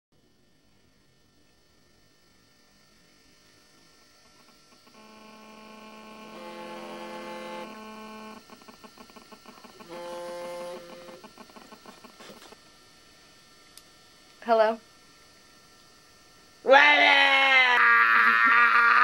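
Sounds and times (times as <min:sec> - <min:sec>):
phone vibration buzzing: 0:03.8 - 0:12.6.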